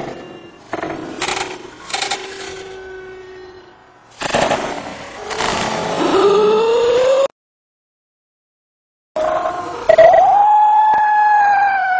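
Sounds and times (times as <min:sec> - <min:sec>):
loud bursts of noise: 0:03.7 - 0:07.3.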